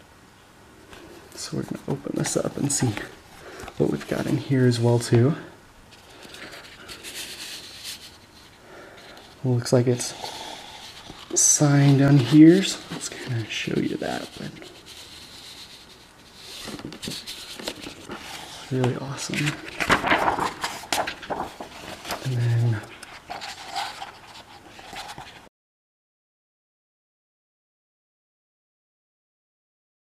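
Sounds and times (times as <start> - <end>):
book pages turning: 0.9 - 4.4, 5.9 - 9.4, 10.0 - 25.4
paper and cardboard rustling: 0.9 - 5.1, 5.9 - 25.4.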